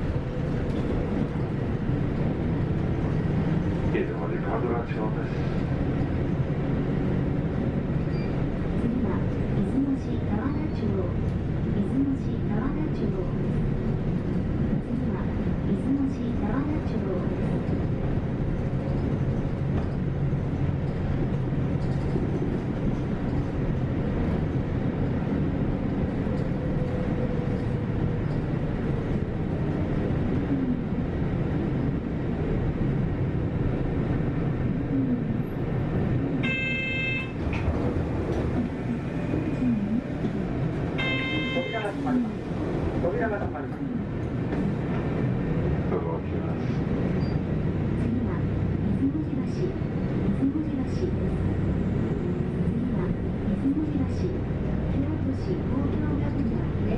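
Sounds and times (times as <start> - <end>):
bus engine and road rumble: 0.0 - 56.9
short ringing tone: 36.4 - 37.4, 41.0 - 41.7.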